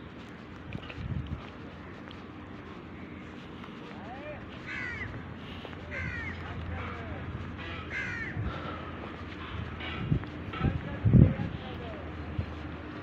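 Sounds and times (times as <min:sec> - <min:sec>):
birds calling: 0:00.0 - 0:10.4
steady low rumble: 0:00.0 - 0:13.0.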